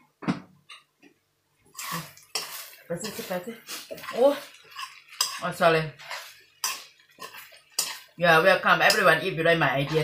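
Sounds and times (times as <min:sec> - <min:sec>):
utensil scraping a frying pan: 0:01.7 - 0:10.0.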